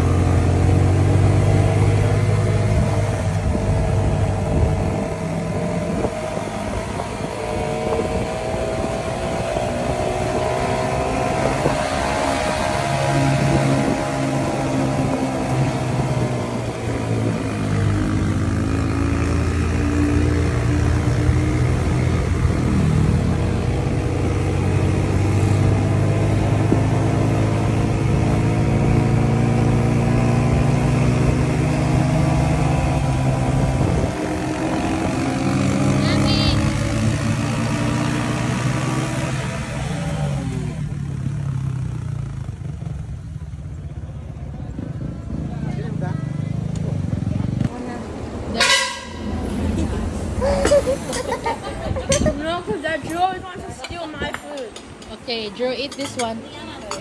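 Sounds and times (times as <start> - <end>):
small motorcycle engine riding: 0.0 - 57.0
wind noise: 0.8 - 19.7, 20.8 - 37.4, 47.6 - 55.1.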